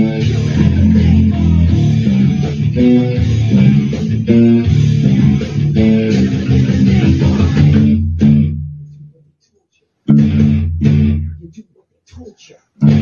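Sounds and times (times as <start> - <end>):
heavy rock band: 0.0 - 8.6, 10.1 - 11.3
electric bass fingerstyle: 0.0 - 9.2, 10.1 - 11.6, 12.8 - 13.0.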